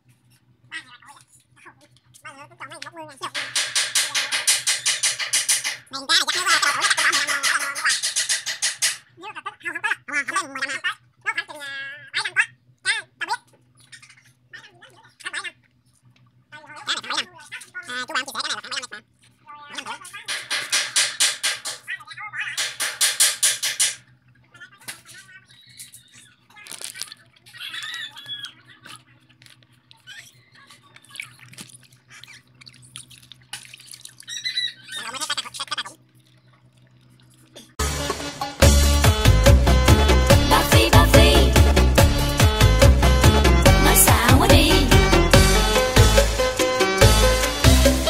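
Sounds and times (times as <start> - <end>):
fish splashing in bag of water: 30.8 - 34.4.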